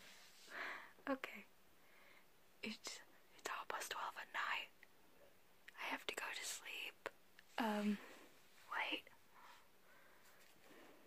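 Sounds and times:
woman whispering: 0:01.0 - 0:01.5, 0:02.6 - 0:04.8, 0:05.7 - 0:09.2.

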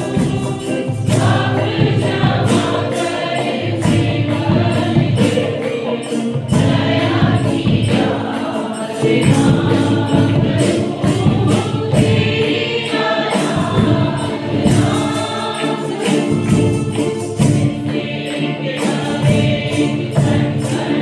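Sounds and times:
mixed choir singing: 0:00.0 - 0:21.0
steady beat: 0:00.0 - 0:21.0.

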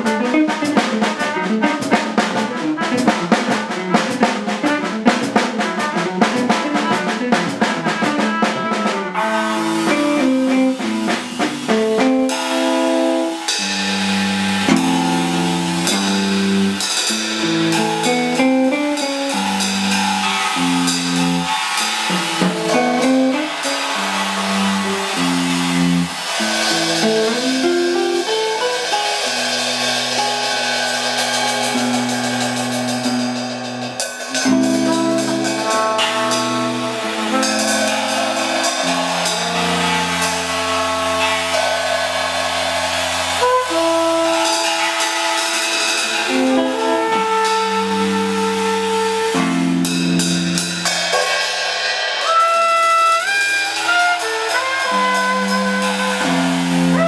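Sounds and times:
cornet long held notes: 0:00.0 - 0:57.0
drum kit with ringing cymbals: 0:00.0 - 0:57.0
electric guitar playing chords: 0:09.1 - 0:51.3.

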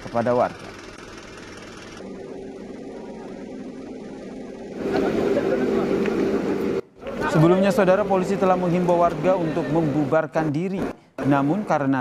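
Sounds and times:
vehicle engine running: 0:00.0 - 0:12.0.

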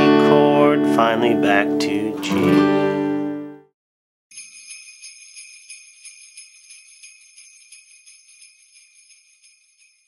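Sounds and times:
jingle bells shaken: 0:04.3 - 0:10.0.

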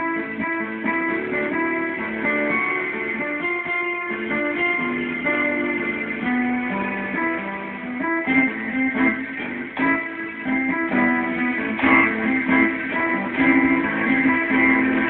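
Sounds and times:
electronic keyboard playing: 0:00.0 - 0:15.0.

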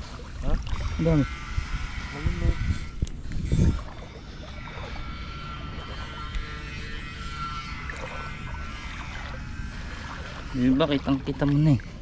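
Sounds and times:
motorboat engine humming: 0:00.0 - 0:12.0.

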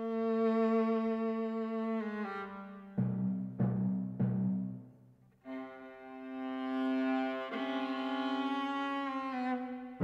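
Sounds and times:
viola long bowed notes: 0:05.4 - 0:10.0.

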